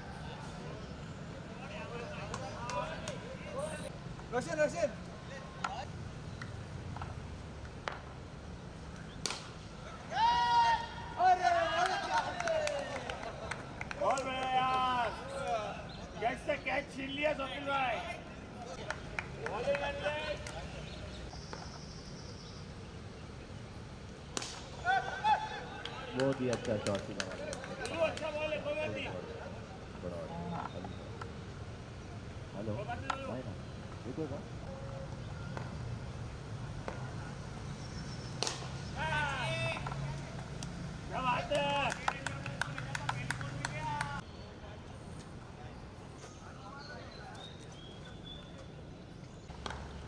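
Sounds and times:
players shouting: 9.8 - 13.4, 14.0 - 18.3, 24.7 - 29.2, 38.9 - 40.4, 41.1 - 44.2.

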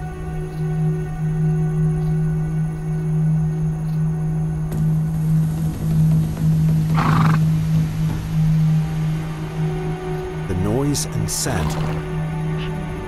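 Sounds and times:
low drone background music: 0.0 - 13.0
horse call: 6.9 - 7.5, 11.5 - 12.0.

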